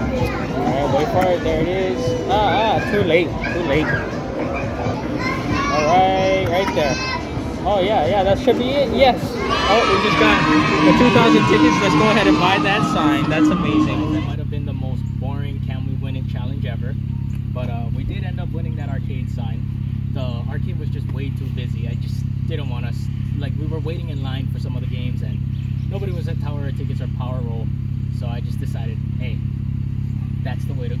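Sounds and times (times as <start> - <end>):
car engine idling: 0.0 - 31.0
man talking: 0.6 - 4.0, 7.6 - 29.4, 30.4 - 31.0.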